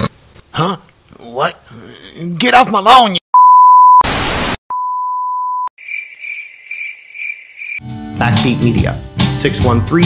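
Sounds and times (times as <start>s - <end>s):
censor beep: 3.3s - 4.1s, 4.7s - 5.7s
static hiss burst: 4.0s - 4.6s.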